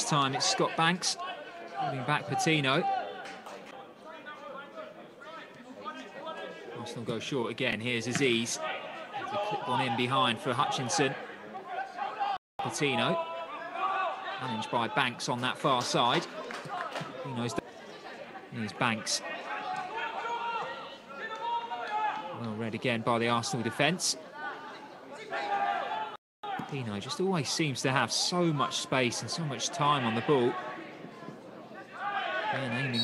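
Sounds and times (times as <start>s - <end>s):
faint voices talking: 23.1s - 33.0s
distant players shouting: 29.4s - 33.0s.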